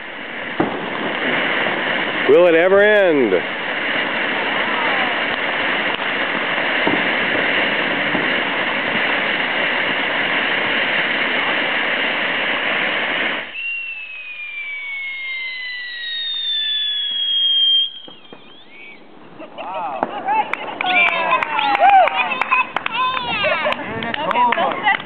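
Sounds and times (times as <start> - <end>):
firework fountain hissing: 0.0 - 25.0
falling whistles: 13.4 - 19.1.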